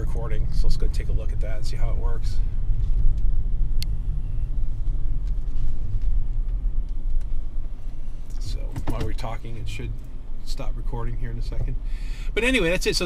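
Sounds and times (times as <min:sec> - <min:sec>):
car cabin rumble while driving: 0:00.0 - 0:13.0.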